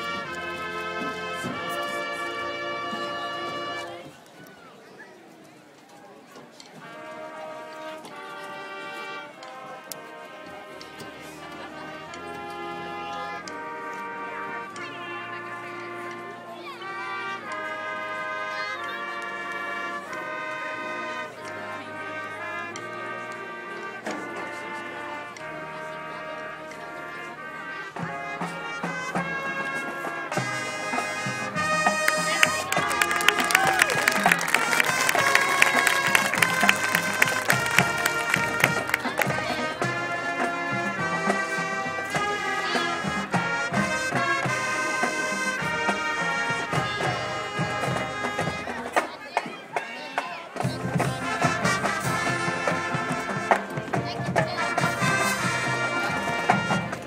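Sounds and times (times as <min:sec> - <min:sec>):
marching band brass chords: 0:00.0 - 0:04.2, 0:06.6 - 0:57.0
percussion: 0:28.0 - 0:57.0.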